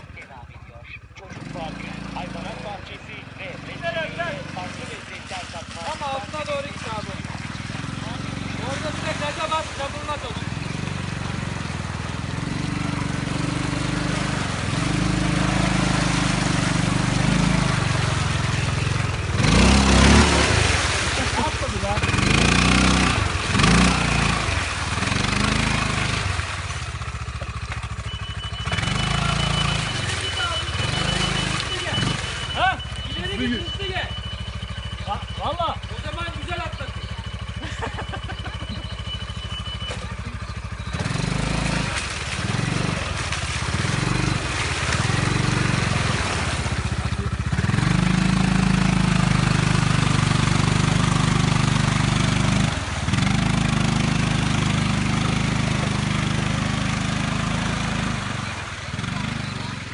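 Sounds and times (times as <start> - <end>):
quad bike engine revving: 0.0 - 59.9.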